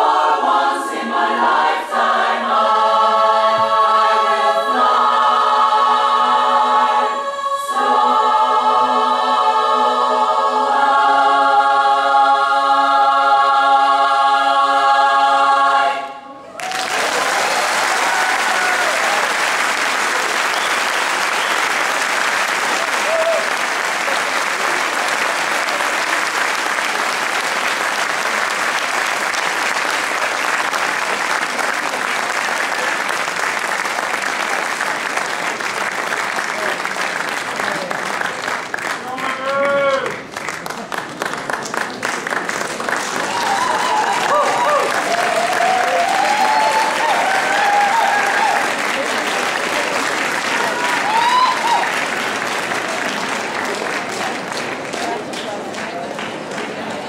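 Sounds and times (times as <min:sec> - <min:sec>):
women's chorus singing a cappella: 0:00.0 - 0:16.3
audience applause: 0:16.5 - 0:57.0.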